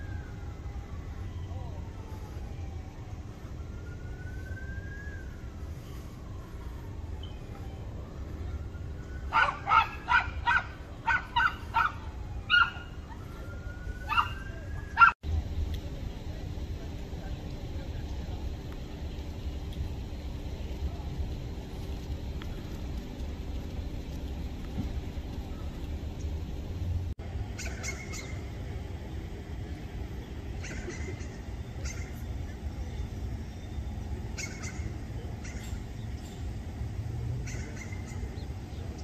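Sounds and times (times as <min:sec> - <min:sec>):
low street hum: 0:00.0 - 0:39.0
dog barking: 0:09.3 - 0:12.9.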